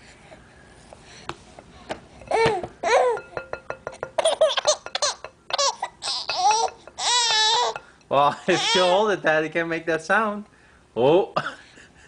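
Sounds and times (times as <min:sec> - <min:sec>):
baby girl laughing: 0:04.2 - 0:09.0.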